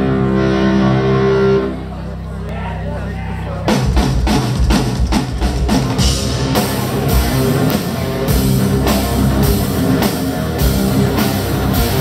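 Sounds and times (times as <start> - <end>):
live rock band playing: 0.0 - 1.9, 3.6 - 12.0.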